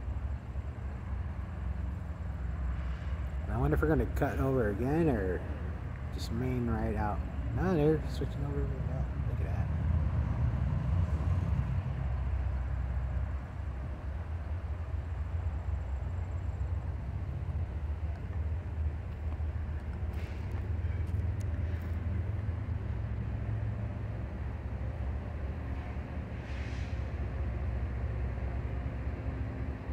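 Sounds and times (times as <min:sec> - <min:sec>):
distant diesel locomotives rumbling: 0:00.0 - 0:29.9.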